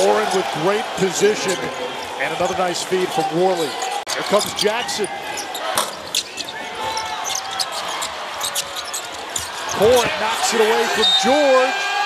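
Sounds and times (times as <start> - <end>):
crowd noise: 0.0 - 12.0
shoe squeaks: 3.4 - 11.6.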